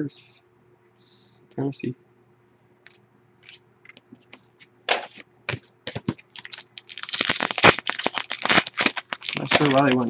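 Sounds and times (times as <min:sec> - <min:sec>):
foil wrapper crinkling and tearing: 0:05.9 - 0:10.0.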